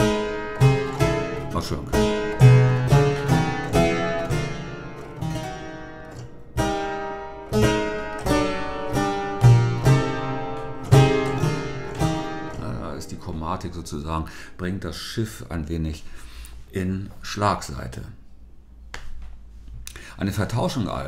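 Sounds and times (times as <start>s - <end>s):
harpsichord playing chords: 0.0s - 14.4s.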